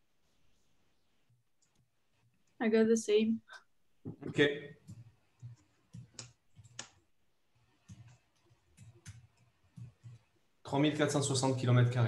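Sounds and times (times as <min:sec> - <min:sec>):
keyboard typing clicks: 0:04.8 - 0:07.1, 0:07.8 - 0:10.3.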